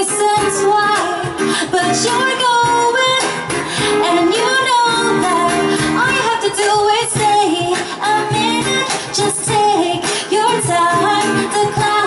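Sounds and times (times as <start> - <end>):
guitar: 0.0 - 12.0
hand-played cajon: 0.0 - 12.0
woman singing pop song: 0.0 - 12.0.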